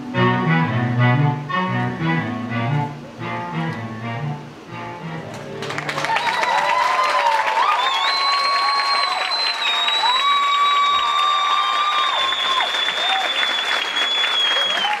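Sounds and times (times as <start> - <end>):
audience applauding and cheering: 5.2 - 15.0
long high whistles: 7.6 - 15.0.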